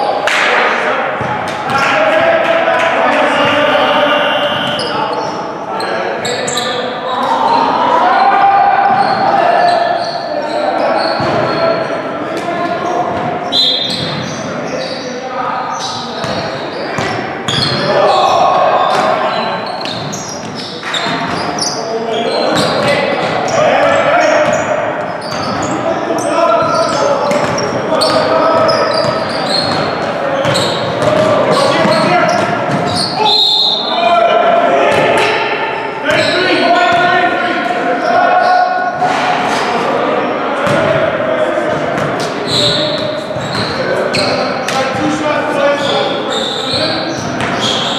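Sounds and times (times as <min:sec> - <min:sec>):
players' voices echoing: 0:00.0 - 0:47.9.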